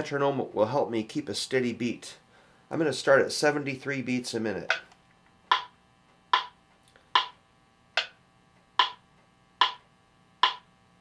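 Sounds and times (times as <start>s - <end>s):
electronic metronome clicking: 4.6s - 10.7s.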